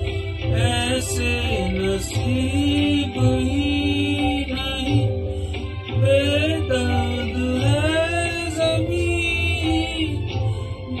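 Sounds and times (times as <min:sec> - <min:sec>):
karaoke backing track: 0:00.0 - 0:11.0
man singing: 0:00.0 - 0:11.0
soft low beat: 0:00.0 - 0:11.0.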